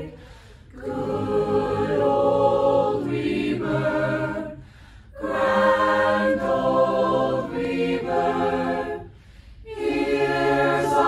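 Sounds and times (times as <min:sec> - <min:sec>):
choir singing a hymn unaccompanied: 0:00.0 - 0:11.0.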